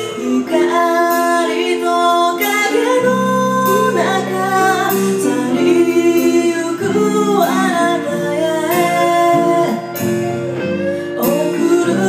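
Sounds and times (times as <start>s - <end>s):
lead singer singing: 0.0s - 12.0s
live pop-rock band playing: 0.0s - 12.0s.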